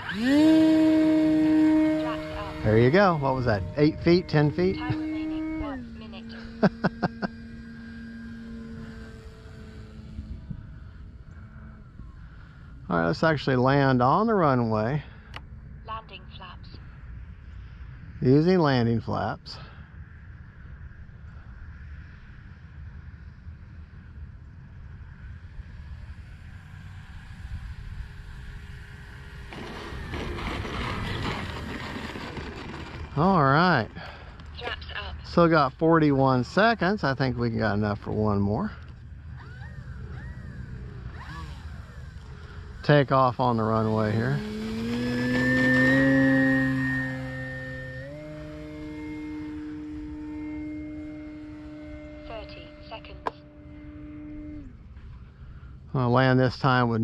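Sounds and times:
model plane motor whine: 0.0s - 15.8s, 16.7s - 57.0s
wind rumble on microphone: 0.0s - 57.0s.

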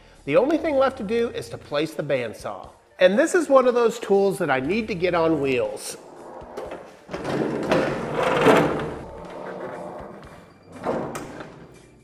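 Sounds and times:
bandsaw scraping across floor: 5.8s - 11.8s.

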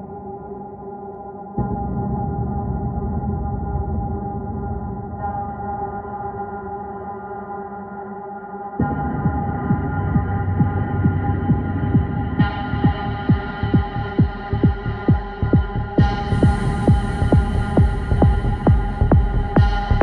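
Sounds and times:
steady kick drum: 8.8s - 20.0s.

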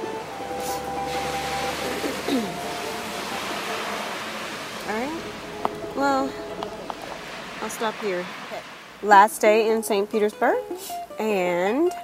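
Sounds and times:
faint held musical notes: 0.0s - 8.4s
hiss of wet city street: 0.0s - 11.1s
low rumble: 0.2s - 9.8s.

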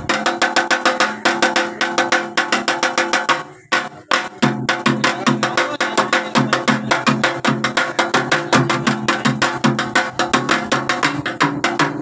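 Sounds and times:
drum beaten with sticks: 0.0s - 12.0s.

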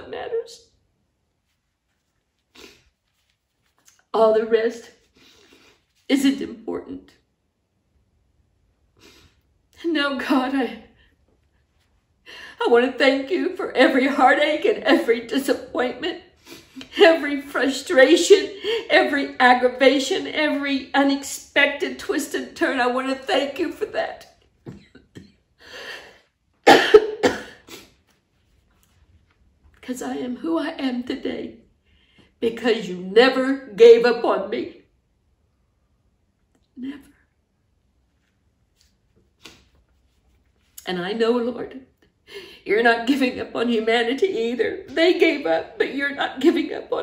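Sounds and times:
woman sniffling: 2.5s - 3.0s
woman coughing into tissue: 26.6s - 28.0s.

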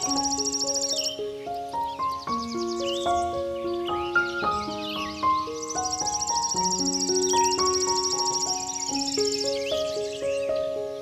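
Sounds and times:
pulsing insect trill: 0.0s - 1.2s, 4.4s - 10.2s
gentle piano music: 0.0s - 11.0s.

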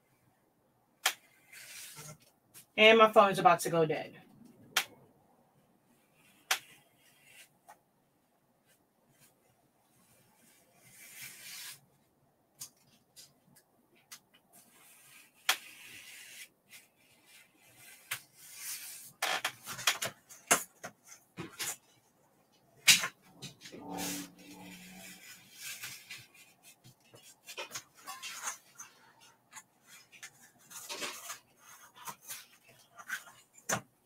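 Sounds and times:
knife scraping foam board: 1.0s - 2.2s, 6.1s - 7.5s, 10.0s - 11.8s, 14.6s - 19.8s, 23.9s - 33.8s.

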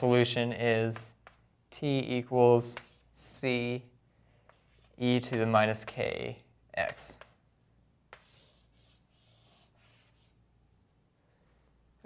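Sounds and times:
soft high scratching of writing: 2.6s - 3.3s, 4.4s - 5.5s, 8.1s - 10.4s.

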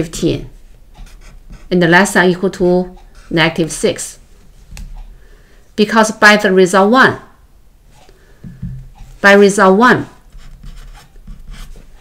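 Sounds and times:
marker pen writing: 0.9s - 1.7s, 10.2s - 12.0s.

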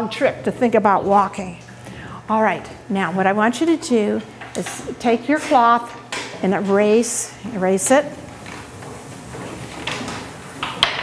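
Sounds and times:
cloths scrubbing slates: 6.4s - 10.8s.

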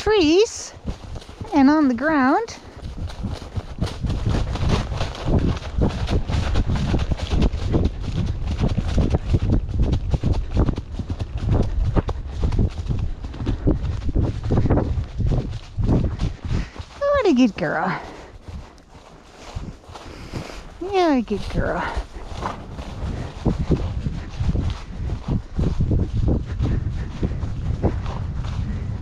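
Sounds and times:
hooves crunching through dry leaves: 0.0s - 29.0s
low rumble: 2.6s - 29.0s.

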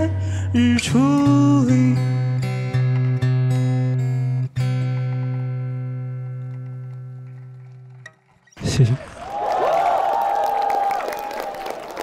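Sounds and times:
audience cheering and applause: 8.6s - 12.0s.

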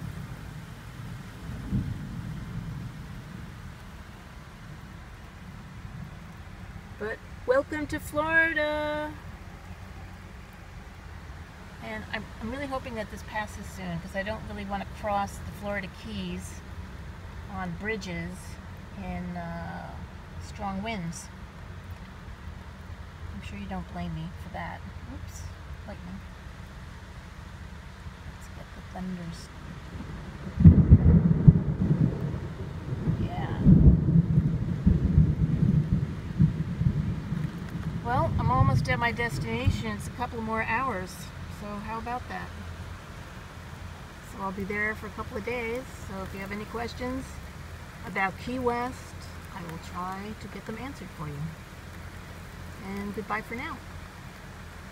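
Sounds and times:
heavy rain on vehicle roof: 0.0s - 54.9s
low rumble: 28.2s - 54.9s.

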